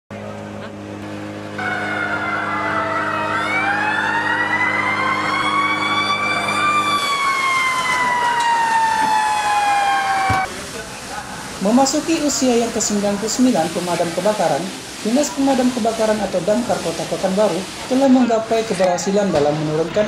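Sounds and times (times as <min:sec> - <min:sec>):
steady low hum: 0:00.1 - 0:07.1
fire engine sirens wailing: 0:00.2 - 0:20.0.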